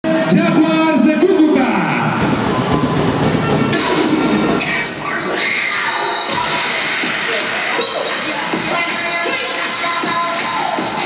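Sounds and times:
crowd noise: 0:00.0 - 0:11.0
noisy sound effects build: 0:00.3 - 0:07.7.

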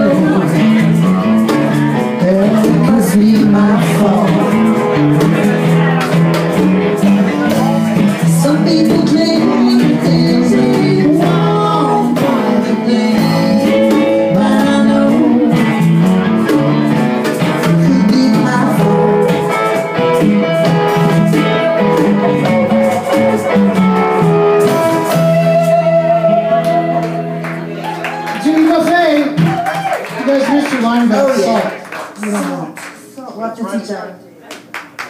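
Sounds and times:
congas: 0:00.0 - 0:33.0
acoustic and electric guitars: 0:00.0 - 0:33.2.

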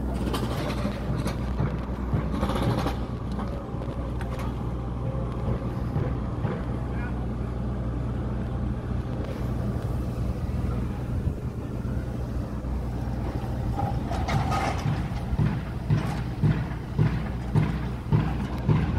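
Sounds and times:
knocks and clanks: 0:00.0 - 0:04.6, 0:05.3 - 0:07.0, 0:13.2 - 0:18.9
excavator diesel engines droning: 0:00.0 - 0:18.9.

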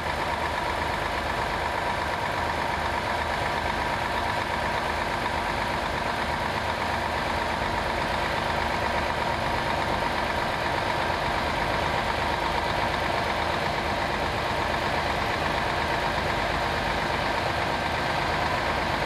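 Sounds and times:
crane engine running: 0:00.0 - 0:19.0.

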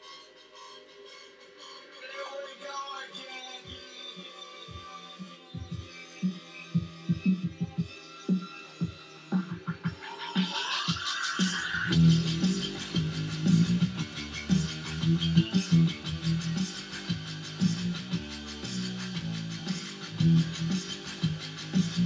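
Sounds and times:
drum and bass backing track: 0:01.4 - 0:22.0
fast ticking hi-hats: 0:05.6 - 0:22.0
rising sweep: 0:09.2 - 0:22.0
electric bass guitar: 0:11.8 - 0:22.0.

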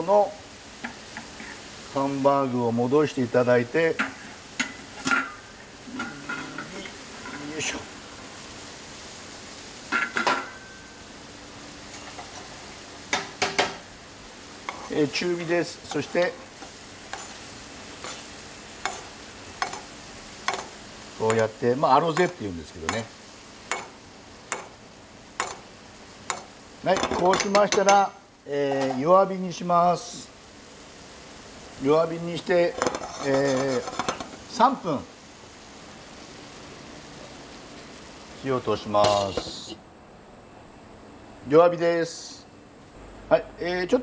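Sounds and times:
sauce sizzling and bubbling: 0:00.0 - 0:41.5
metal spoon clicking on pan: 0:19.6 - 0:19.8, 0:20.5 - 0:20.7, 0:23.7 - 0:23.9, 0:24.5 - 0:24.7, 0:25.4 - 0:25.6.

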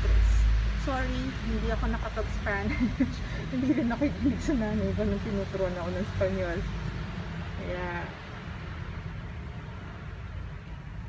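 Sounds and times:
low background rumble: 0:00.0 - 0:11.0.

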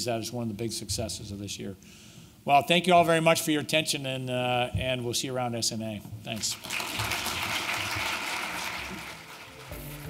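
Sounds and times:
audience applauding: 0:06.5 - 0:10.0
music: 0:08.3 - 0:10.0.

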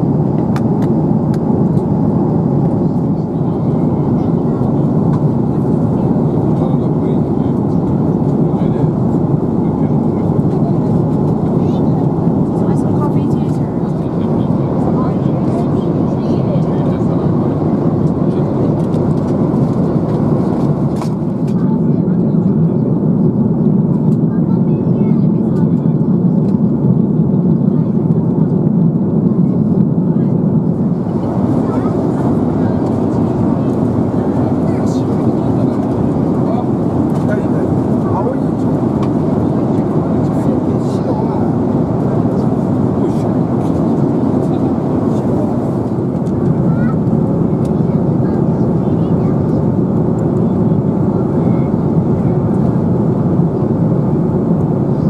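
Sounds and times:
airliner cabin roar: 0:00.0 - 0:55.0.

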